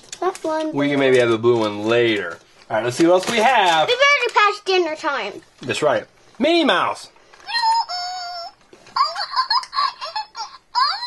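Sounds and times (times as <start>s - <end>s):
high-pitched voice calling: 7.5s - 11.0s
sing-song chatter or giggling: 7.5s - 11.0s.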